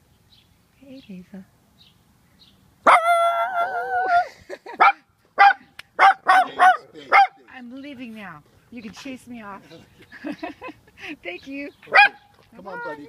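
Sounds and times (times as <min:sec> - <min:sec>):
dog barking: 0:04.8 - 0:07.4, 0:11.9 - 0:12.3.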